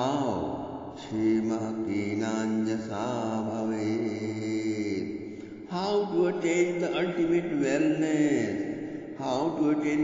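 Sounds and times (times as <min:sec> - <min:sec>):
person chanting mantra: 0:00.0 - 0:10.0.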